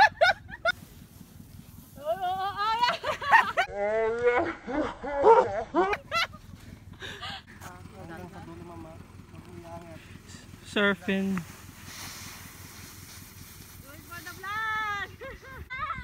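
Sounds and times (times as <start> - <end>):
people shrieking and laughing: 0.0 - 0.8, 2.0 - 7.5, 15.0 - 16.0.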